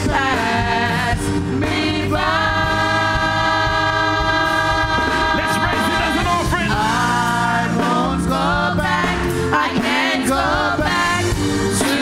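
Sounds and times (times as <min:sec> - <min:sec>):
gospel music with singing: 0:00.0 - 0:12.0.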